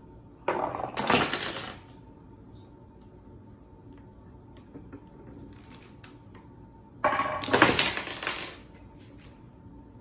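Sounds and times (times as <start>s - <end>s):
ball rolling on wooden lane: 0.4s - 1.0s.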